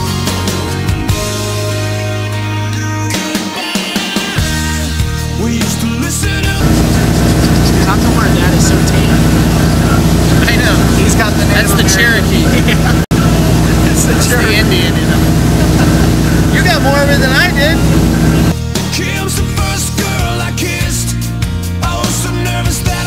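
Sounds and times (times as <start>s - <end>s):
men talking: 6.6s - 18.6s
motorboat engine drone: 6.6s - 18.6s
water rushing: 6.6s - 18.6s.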